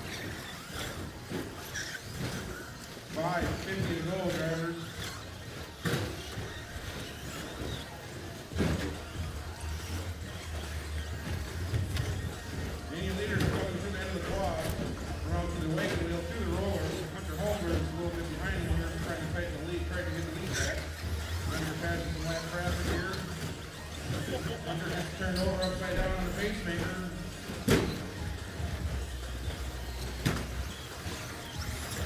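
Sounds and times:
indistinct voices: 5.8s - 32.0s.

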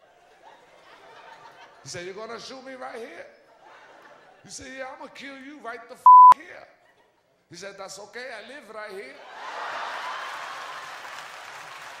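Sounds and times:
audience applauding: 9.8s - 12.0s.

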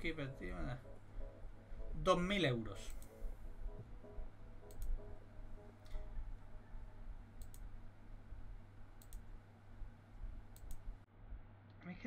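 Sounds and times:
faint low hum: 0.0s - 12.0s
computer mouse clicking: 2.9s - 3.2s, 4.6s - 5.0s, 7.4s - 7.7s, 9.0s - 9.3s, 10.5s - 10.9s.

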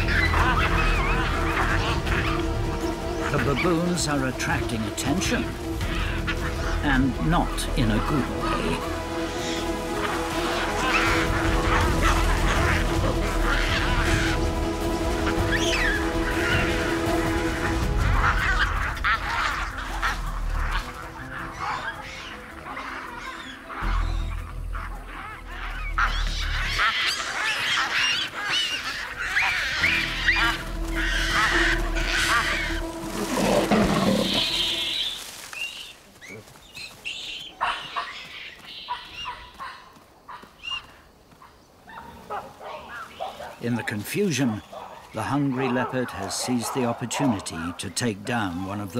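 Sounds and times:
film score low sustained notes: 0.0s - 27.9s, 28.9s - 35.0s
baboons screaming: 0.0s - 41.0s, 41.9s - 48.9s.

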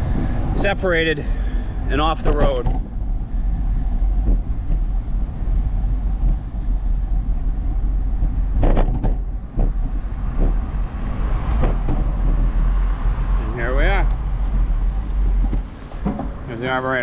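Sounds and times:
tyres on pavement: 0.0s - 17.0s
wind buffeting microphone: 0.0s - 17.0s
sharp knocks: 8.6s - 10.7s, 11.4s - 12.4s, 15.4s - 16.4s.

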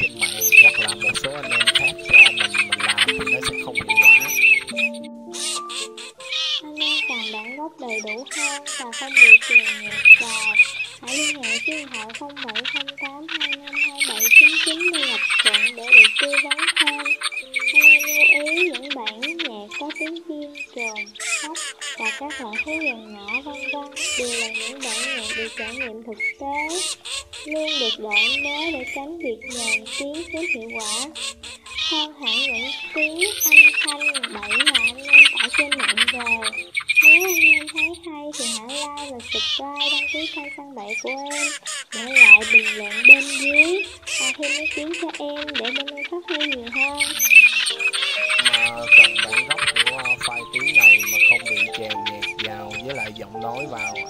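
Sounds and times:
man talking: 0.0s - 4.8s, 48.4s - 54.0s
duck flock calling: 0.0s - 54.0s.

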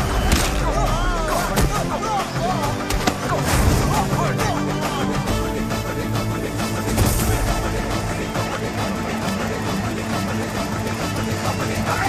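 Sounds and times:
action film score: 0.0s - 12.0s.

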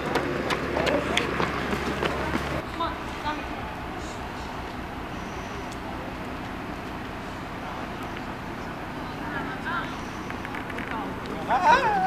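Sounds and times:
running footsteps on concrete: 0.0s - 3.4s
distant voices: 0.0s - 12.0s.

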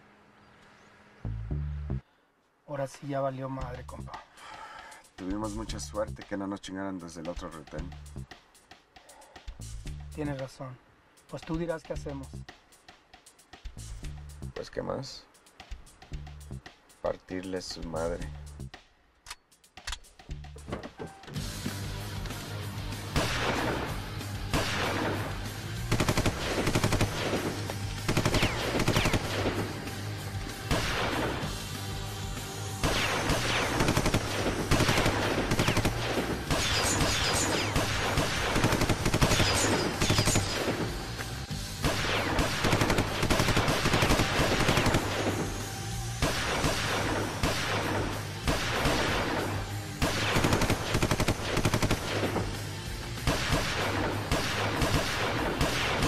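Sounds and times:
background music: 1.2s - 2.1s, 2.9s - 56.0s
heavy gunfire: 23.2s - 29.9s, 30.7s - 31.7s, 32.8s - 41.0s, 41.8s - 45.6s, 46.2s - 52.6s, 53.2s - 56.0s.

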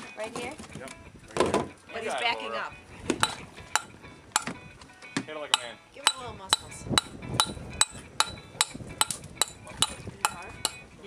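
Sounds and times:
metal tool striking shell: 3.2s - 4.6s, 5.6s - 10.8s.

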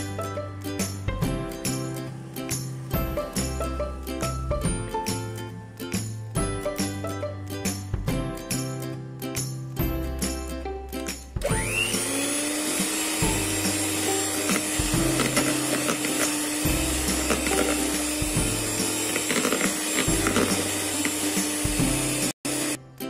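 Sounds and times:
background music: 0.0s - 23.0s
electric hand mixer whirring: 11.4s - 22.8s.

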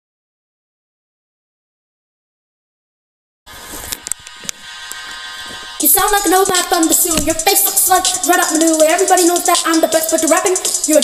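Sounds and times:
electronic buzzing tone: 3.5s - 7.5s
person rapping over a beat: 5.8s - 11.0s.

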